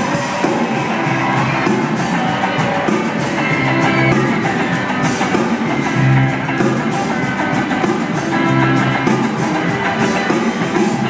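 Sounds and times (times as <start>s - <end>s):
live band with guitar and drums: 0.0s - 11.0s.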